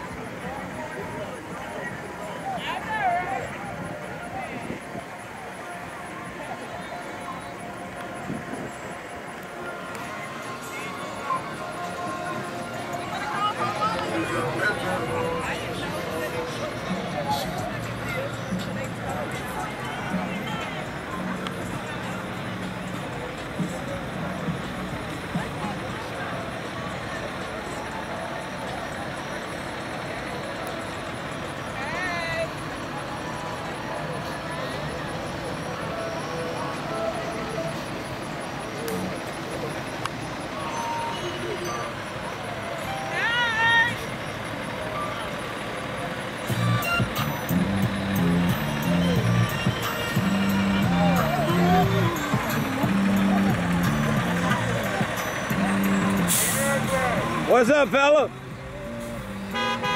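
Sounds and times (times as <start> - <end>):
crowd voices: 0.0 - 59.9
vehicles passing slowly: 0.0 - 59.9
music with bass line: 46.5 - 57.5.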